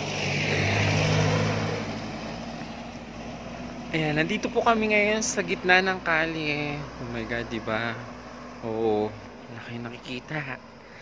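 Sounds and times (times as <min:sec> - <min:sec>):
vehicle passing by: 0:00.0 - 0:11.0.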